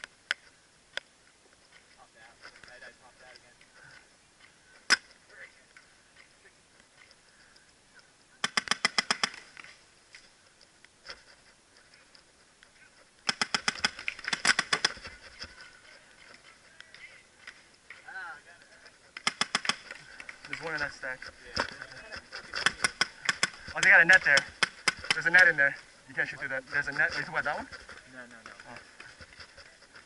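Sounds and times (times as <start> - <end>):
paintball marker firing: 8.4 - 9.6, 13.2 - 15.1, 19.2 - 20.4, 22.6 - 25.4.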